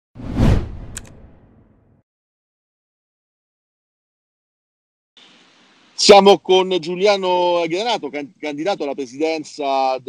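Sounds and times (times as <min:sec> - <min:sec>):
whoosh: 0:00.2 - 0:01.7
short sharp click: 0:00.8 - 0:01.2.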